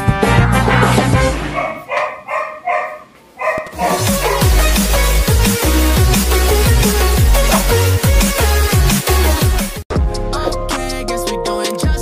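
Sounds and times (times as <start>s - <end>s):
music: 0.0s - 1.6s, 3.8s - 12.0s
dog barking: 1.4s - 4.8s
electronic music with bass: 3.8s - 12.0s.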